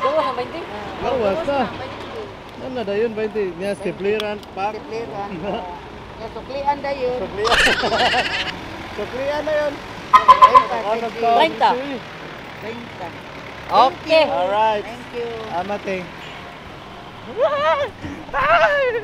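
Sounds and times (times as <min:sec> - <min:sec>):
city street traffic: 0:00.0 - 0:19.0.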